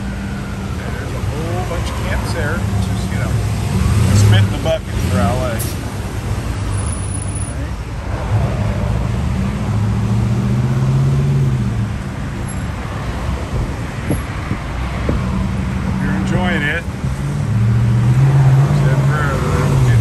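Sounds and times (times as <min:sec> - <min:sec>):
tyre and road noise: 0:00.0 - 0:20.0
vehicles passing: 0:00.0 - 0:20.0.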